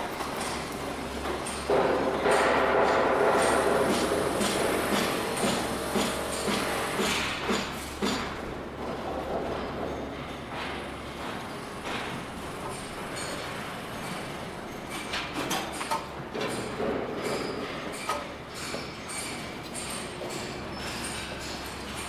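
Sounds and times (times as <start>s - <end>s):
mechanical machinery noise: 0.0s - 22.0s.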